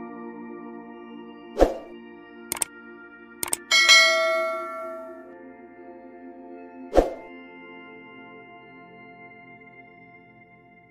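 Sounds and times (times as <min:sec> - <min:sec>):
ambient music drone: 0:00.0 - 0:10.9
quick clicks: 0:03.4 - 0:03.7
bright bell chime: 0:03.4 - 0:05.3.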